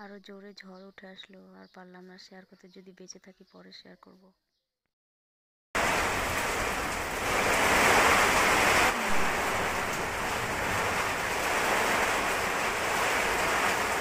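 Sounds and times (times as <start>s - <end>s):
rain: 5.8s - 14.0s
wind: 5.8s - 14.0s.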